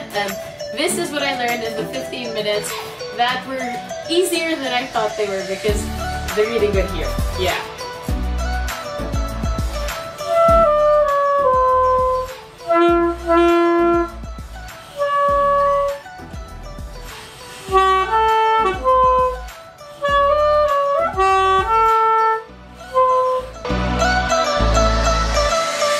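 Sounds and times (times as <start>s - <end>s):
backing track with bass line: 5.7s - 25.9s
alto saxophone melody: 5.8s - 25.9s.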